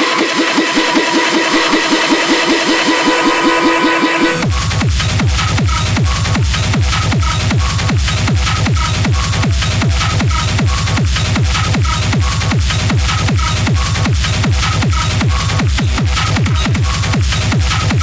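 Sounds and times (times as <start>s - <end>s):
fast techno kick drum: 0.0s - 18.0s.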